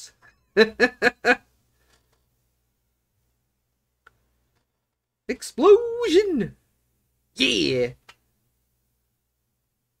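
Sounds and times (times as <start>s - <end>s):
man laughing: 0.6s - 1.5s.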